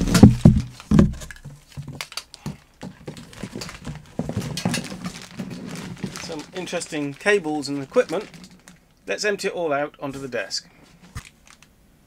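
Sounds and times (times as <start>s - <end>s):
thumps on cardboard box: 0.0s - 5.2s
cables and connectors rattling: 0.0s - 8.9s.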